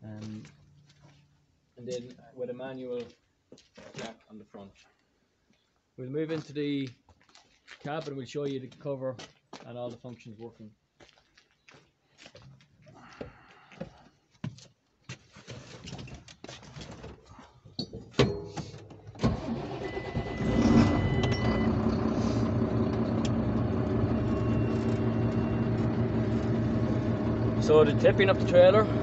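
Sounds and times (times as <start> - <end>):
tractor engine starting and idling: 18.6 - 29.0.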